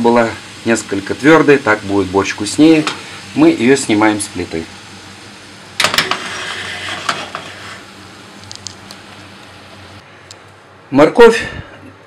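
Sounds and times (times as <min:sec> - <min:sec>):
vegetables sizzling in oil: 0:00.0 - 0:10.0
pan knocking: 0:05.8 - 0:07.5.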